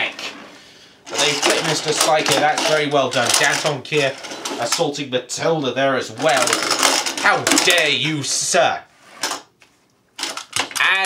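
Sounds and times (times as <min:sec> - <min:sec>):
toy robot clattering on wood: 0:06.2 - 0:07.9, 0:10.2 - 0:11.0.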